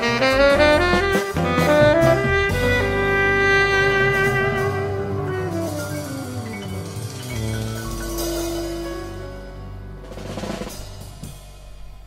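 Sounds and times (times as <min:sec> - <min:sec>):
tenor saxophone long note: 0:00.0 - 0:09.3
cymbal and drums: 0:00.0 - 0:12.0
electronic jazz backing: 0:00.0 - 0:12.0.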